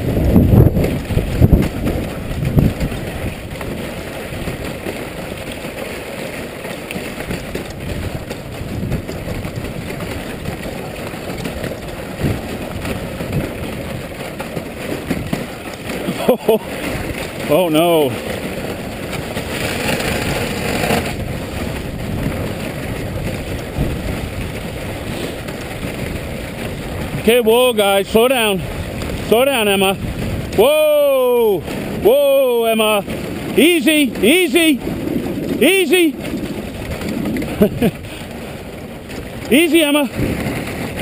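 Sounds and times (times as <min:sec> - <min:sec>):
sled rushing over snow: 0:00.0 - 0:41.0
person's two-part vocal call: 0:30.6 - 0:32.7.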